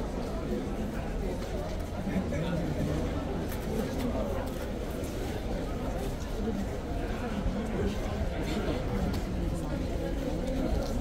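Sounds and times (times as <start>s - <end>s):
indistinct chatter of voices: 0.0s - 11.0s.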